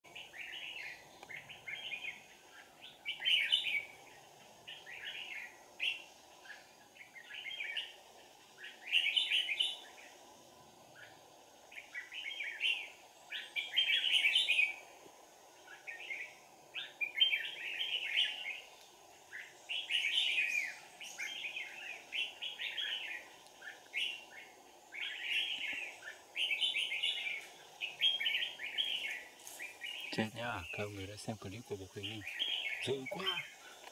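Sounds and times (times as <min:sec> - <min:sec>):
bird singing chirpy phrases: 0:00.1 - 0:08.0, 0:08.6 - 0:10.2, 0:10.9 - 0:14.9, 0:15.5 - 0:33.8.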